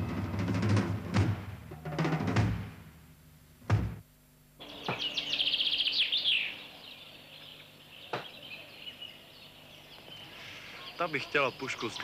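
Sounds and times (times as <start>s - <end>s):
faint hiss: 0.4s - 12.0s
bird trilling: 4.6s - 12.0s.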